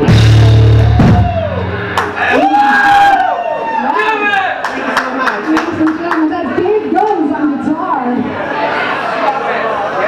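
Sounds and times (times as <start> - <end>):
audience whooping and shouting: 0.6 - 4.6.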